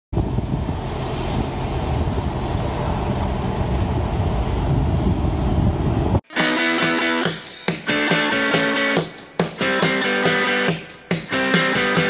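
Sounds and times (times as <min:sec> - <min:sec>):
wind buffeting microphone: 0:00.1 - 0:06.2.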